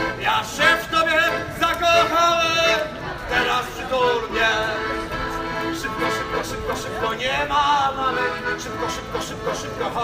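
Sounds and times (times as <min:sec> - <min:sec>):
piano accordion playing: 0:00.0 - 0:10.0.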